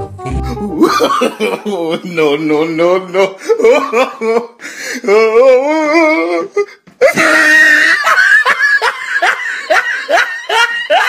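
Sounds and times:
person laughing in short bursts: 0.4 - 1.8.

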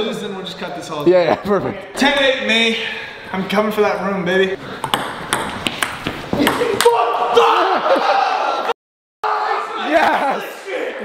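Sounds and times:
table tennis ball clicking: 4.8 - 6.2.

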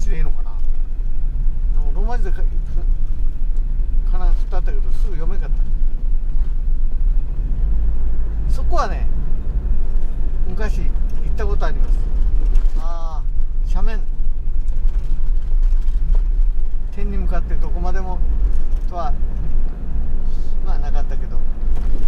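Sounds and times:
vehicle driving on road: 0.0 - 22.0.

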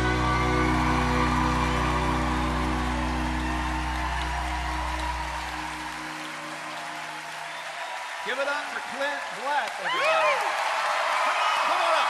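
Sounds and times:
deep bass note: 0.0 - 5.9
audience applause: 0.0 - 12.0.

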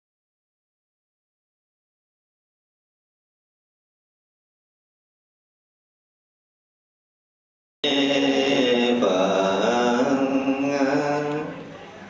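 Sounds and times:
man chanting slow long notes: 7.9 - 11.7.

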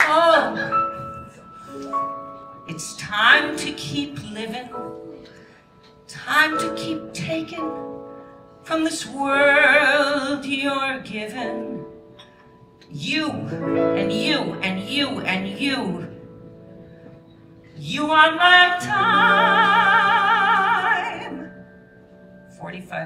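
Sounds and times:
woman singing with vibrato: 0.0 - 1.0, 17.8 - 21.6
piano accompaniment: 0.0 - 23.0.

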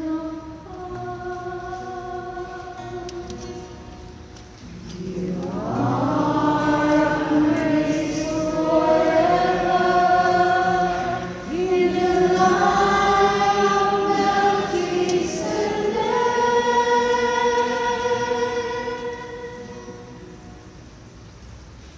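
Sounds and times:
woman singing unaccompanied: 0.0 - 3.7, 4.9 - 20.2.

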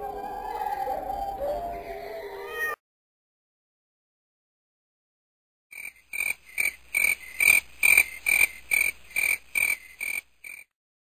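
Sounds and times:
frog croaking: 5.7 - 10.7.

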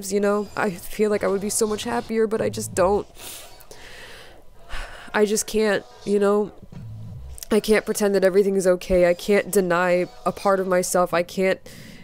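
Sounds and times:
woman breathing unsteadily: 2.4 - 5.2, 11.6 - 12.0.

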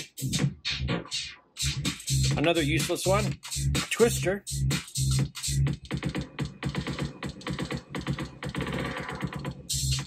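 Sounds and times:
electronic dance music: 0.0 - 10.0
stuttering beat repeats: 0.0 - 10.0.

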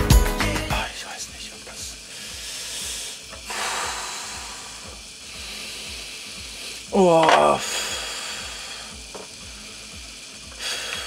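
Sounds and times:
steady hiss: 0.0 - 11.0
tattoo machine buzzing: 0.7 - 11.0.

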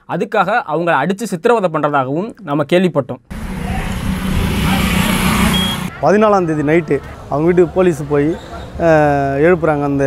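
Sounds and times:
traffic rumble: 3.3 - 10.0
brief high beep: 5.5 - 5.9.

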